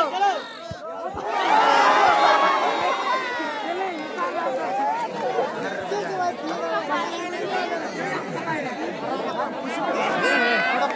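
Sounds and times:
crowd chattering: 0.0s - 10.9s.

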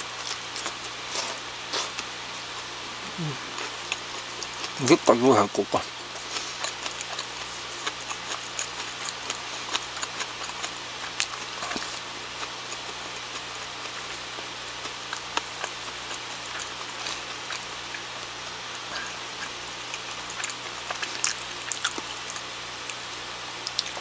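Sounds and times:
person chewing bread: 0.0s - 5.1s, 5.8s - 24.0s
low hum and hiss: 0.0s - 24.0s.

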